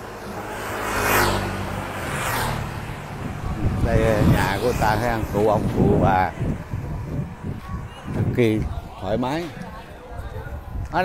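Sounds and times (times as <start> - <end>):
motorbike riding past: 0.0 - 8.1.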